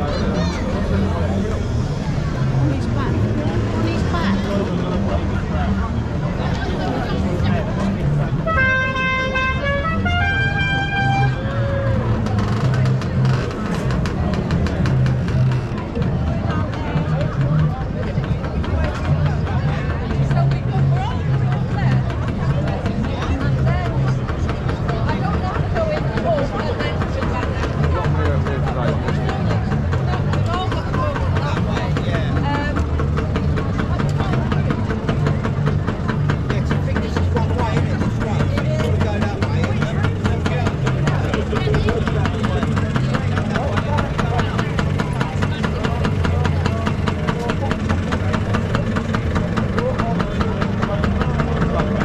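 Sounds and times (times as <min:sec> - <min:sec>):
motor scooter engines idling: 0:00.0 - 0:52.0
traffic rumble: 0:00.0 - 0:52.0
voices: 0:00.0 - 0:52.0
multi-tone vehicle horn playing tune: 0:08.4 - 0:12.2.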